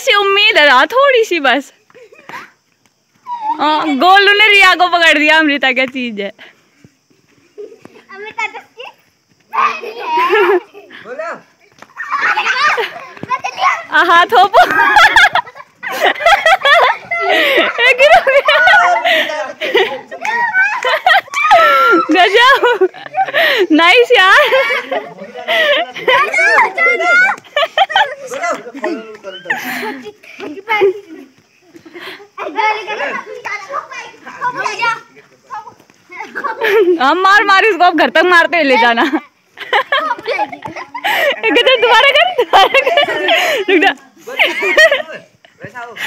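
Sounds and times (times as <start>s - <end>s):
girls shouting excitedly: 3.2s - 5.5s, 8.0s - 11.0s, 11.6s - 25.2s, 25.8s - 29.1s, 32.3s - 44.6s.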